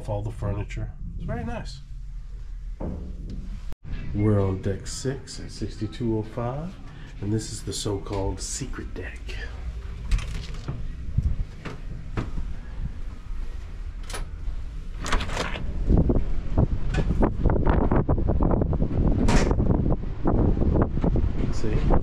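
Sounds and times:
wind rumbling on microphone: 0:08.9 - 0:22.0.

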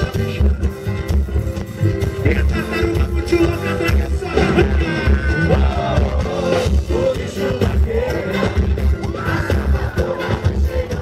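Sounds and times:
drum percussion: 0:00.0 - 0:11.0
heavy bass beat: 0:00.0 - 0:11.0
person singing: 0:02.3 - 0:11.0.

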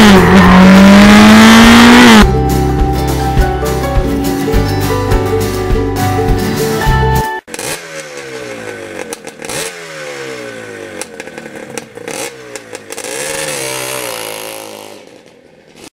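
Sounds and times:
motorcycle engine revving: 0:00.0 - 0:02.3, 0:07.5 - 0:15.9.

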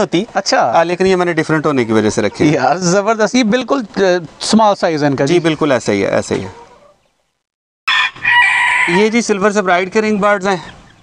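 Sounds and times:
rooster crowing: 0:07.9 - 0:09.2.

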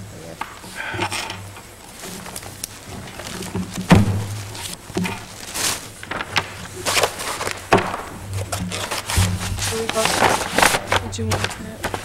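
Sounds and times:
low electrical hum: 0:00.0 - 0:12.0
papers rustling: 0:00.0 - 0:12.0.

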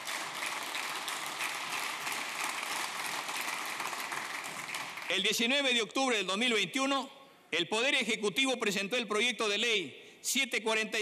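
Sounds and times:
audience clapping: 0:00.0 - 0:05.5.

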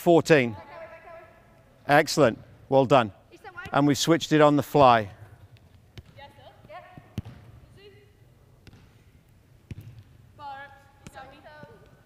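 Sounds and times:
soccer ball kicks on turf: 0:04.7 - 0:07.6, 0:08.6 - 0:10.2, 0:11.0 - 0:12.0.

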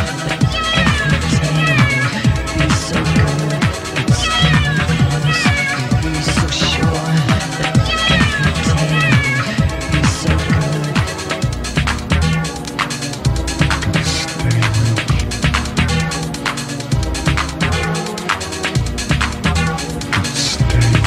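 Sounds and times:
high pitched bending sample: 0:00.0 - 0:16.4
kick-drum beat and bass line: 0:00.0 - 0:21.0.

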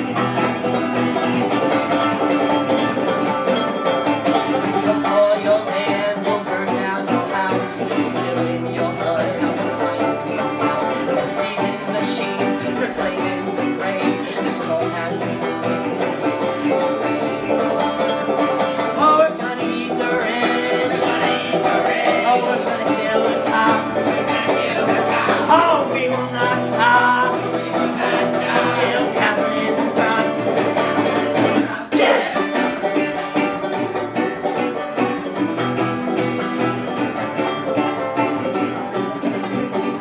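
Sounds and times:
banjo playing: 0:00.0 - 0:40.0
resonator guitar playing: 0:00.0 - 0:40.0
person singing: 0:04.4 - 0:34.0.

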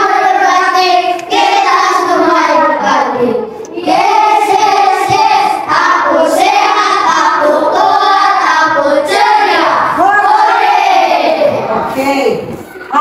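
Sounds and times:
children singing in unison: 0:00.0 - 0:11.9.

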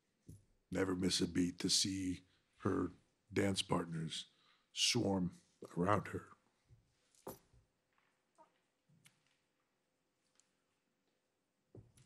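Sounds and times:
man speaking: 0:00.7 - 0:06.4.

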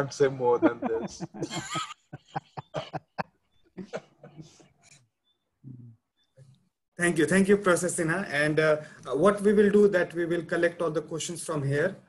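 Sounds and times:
man laughing in breathy bursts: 0:00.6 - 0:04.8.

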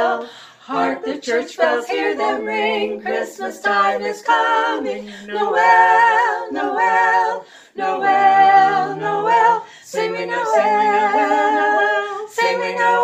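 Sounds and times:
women singing in harmony: 0:00.0 - 0:13.0.

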